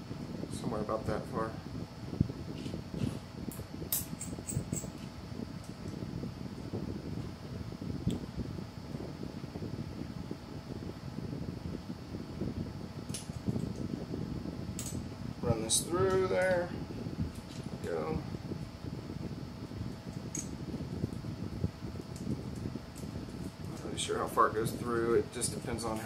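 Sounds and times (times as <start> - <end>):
faint hum: 0.0 - 26.0.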